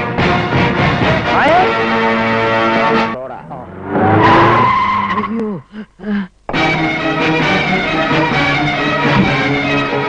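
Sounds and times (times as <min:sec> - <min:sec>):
car tyres screeching: 0:01.8 - 0:05.6.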